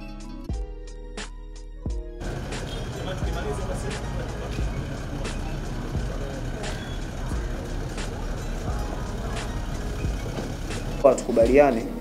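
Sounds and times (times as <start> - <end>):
music with steady beat and bass: 0.0 - 12.0.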